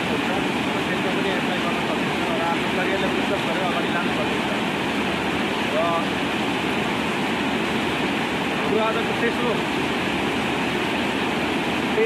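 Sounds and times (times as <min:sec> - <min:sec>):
water rushing over a weir: 0:00.0 - 0:12.0.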